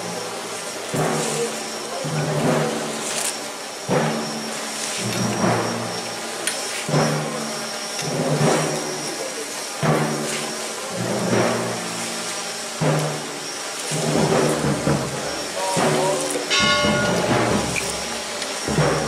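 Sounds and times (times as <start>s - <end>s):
procession crowd voices: 12.6s - 19.0s.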